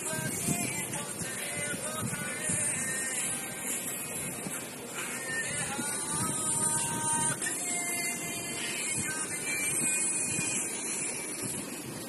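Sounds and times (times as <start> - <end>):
song through small speaker: 0.0 - 12.0
steady hiss: 0.0 - 12.0.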